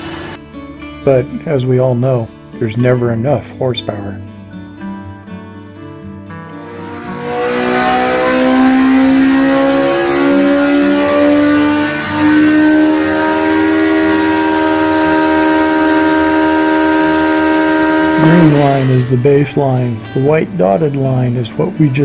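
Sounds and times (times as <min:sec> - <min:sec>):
motorcycle engine revving: 0:06.3 - 0:22.0.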